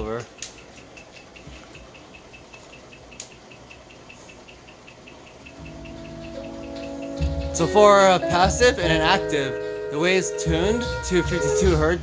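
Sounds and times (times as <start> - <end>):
faint even ticking: 0.0 - 9.1
music with deep bass notes: 5.5 - 12.0.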